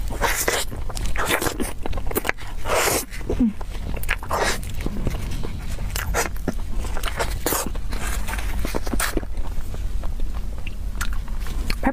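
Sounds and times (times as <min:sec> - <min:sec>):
wet biting and chewing: 0:00.0 - 0:11.9.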